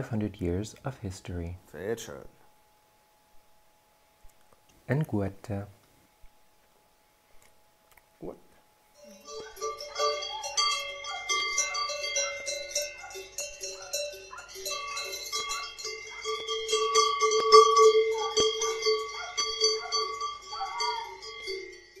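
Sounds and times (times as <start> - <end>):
cowbells clanging: 9.0 - 22.0.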